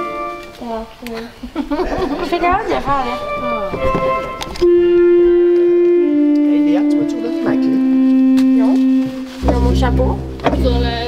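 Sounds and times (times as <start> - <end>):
voices: 0.0 - 11.0
organ holding a note: 3.0 - 11.0
deep bass organ pedal note: 3.2 - 11.0.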